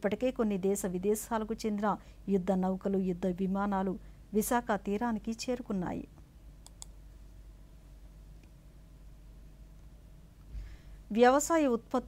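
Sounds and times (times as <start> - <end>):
low room hum: 0.0 - 12.0
faint sharp clicks: 6.6 - 7.0.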